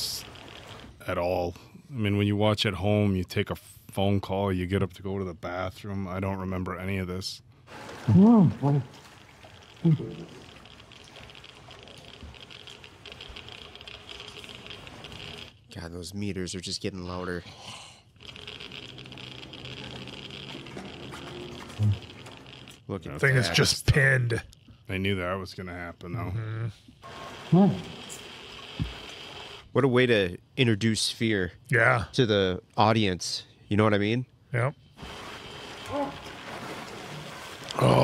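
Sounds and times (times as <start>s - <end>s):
geiger counters crackling: 0.0s - 1.2s, 9.0s - 15.9s, 18.2s - 25.3s.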